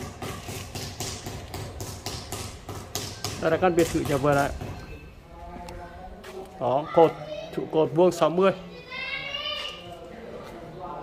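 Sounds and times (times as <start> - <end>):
rapid tapping of hand tools: 0.0 - 4.8.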